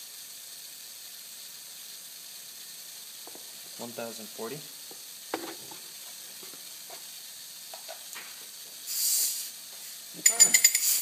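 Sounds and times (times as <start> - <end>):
compressed air hiss: 8.7 - 11.0
burst of air hiss: 8.8 - 10.1, 10.7 - 11.0.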